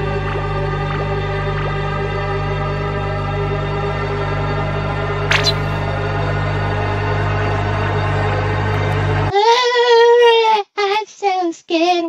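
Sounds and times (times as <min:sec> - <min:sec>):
high childlike singing voice: 0:09.3 - 0:12.0.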